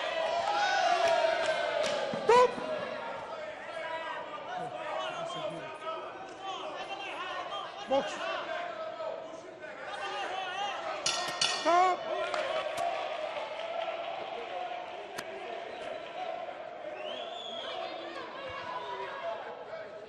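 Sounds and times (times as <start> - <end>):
crowd voices and shouts: 0.0 - 20.0.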